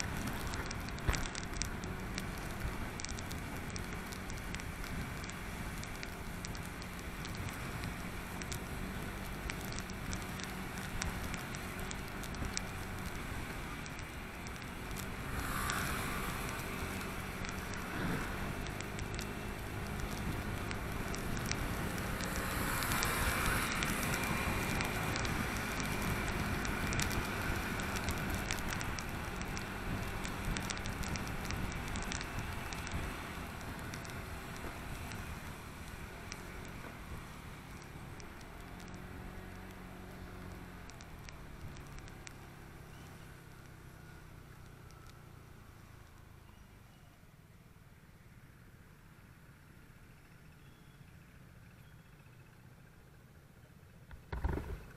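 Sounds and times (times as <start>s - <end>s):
motorbike engine hum: 0.0s - 47.0s, 50.2s - 54.9s
crackling wind and spray: 0.0s - 47.4s, 53.9s - 54.9s.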